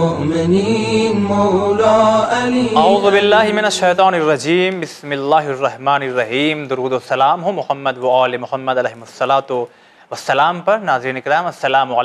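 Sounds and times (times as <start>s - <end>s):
person chanting devotional melody: 0.0s - 4.6s.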